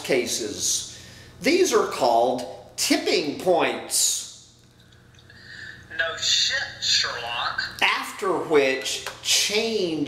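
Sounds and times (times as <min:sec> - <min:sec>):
man speaking: 0:00.0 - 0:04.4, 0:07.6 - 0:10.0
faint breath: 0:00.9 - 0:01.4, 0:05.3 - 0:05.9.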